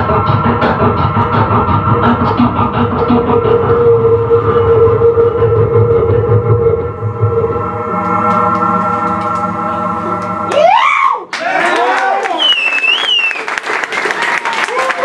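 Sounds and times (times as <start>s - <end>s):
rhythmic electronic pulse: 0.0s - 10.8s
held synth tones: 1.5s - 11.1s.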